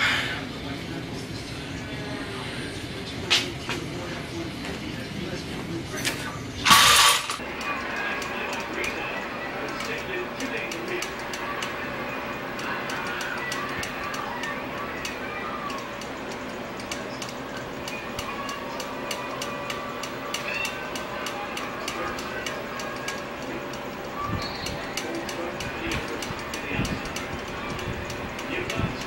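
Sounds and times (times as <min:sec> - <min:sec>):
gym background noise: 0:00.0 - 0:29.0
sharp mechanical ticking: 0:06.7 - 0:29.0.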